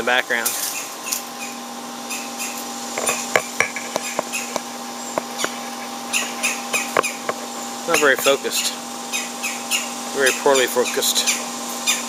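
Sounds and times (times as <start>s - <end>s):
steady hum: 0.0s - 12.0s
bird alarm calls: 0.7s - 8.4s, 9.0s - 12.0s.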